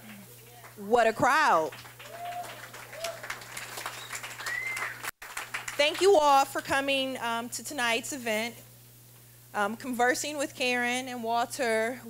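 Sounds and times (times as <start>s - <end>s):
audience applauding: 1.4s - 6.0s.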